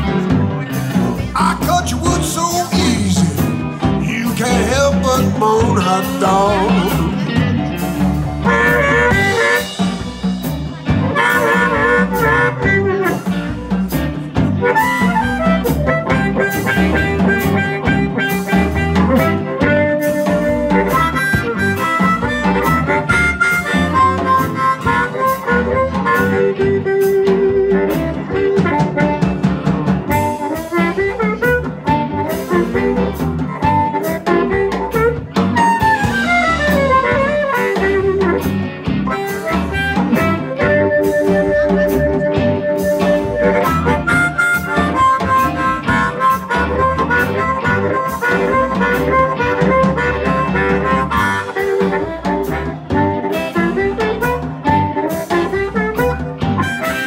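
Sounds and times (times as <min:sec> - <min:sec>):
electric blues band: 0:00.0 - 0:57.0
harmonica solo: 0:01.3 - 0:57.0.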